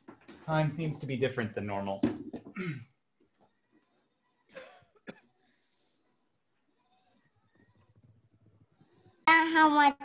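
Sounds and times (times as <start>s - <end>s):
faint cough: 2.5s - 3.0s, 4.5s - 5.4s.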